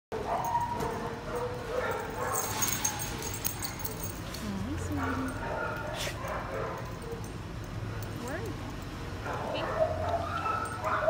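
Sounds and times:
dogs barking: 0.1 - 4.2, 4.9 - 8.4, 9.1 - 11.0.

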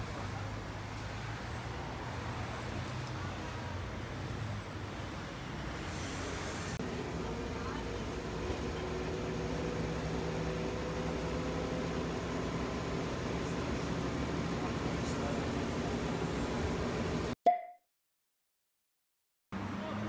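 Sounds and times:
bus engine and road hum: 0.0 - 17.4, 19.6 - 20.0
street traffic noise: 0.0 - 17.4, 19.5 - 20.0.

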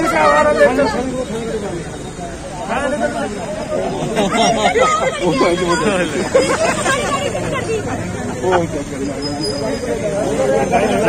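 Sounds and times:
people arguing over each other: 0.0 - 11.0.

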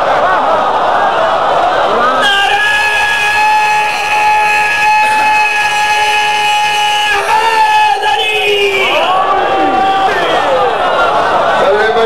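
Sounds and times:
man shouting a long call: 2.2 - 10.6.

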